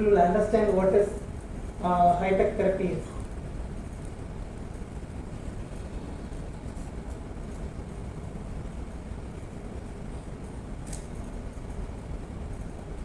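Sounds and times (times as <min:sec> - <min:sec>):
low rumble of room noise: 0:00.0 - 0:13.0.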